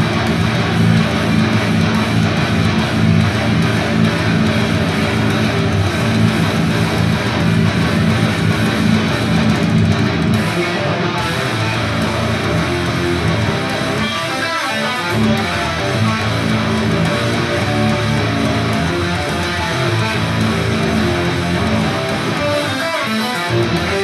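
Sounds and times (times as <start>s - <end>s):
distorted electric guitar riffing: 0.0s - 24.0s
single-note guitar line: 0.0s - 24.0s.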